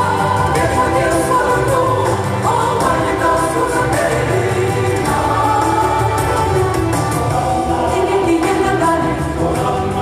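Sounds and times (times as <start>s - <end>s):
rock band playing: 0.0s - 8.6s
choir singing: 0.0s - 10.0s.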